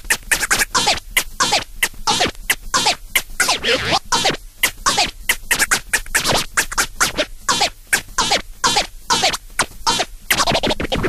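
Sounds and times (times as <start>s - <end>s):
record scratching: 0.0s - 11.0s.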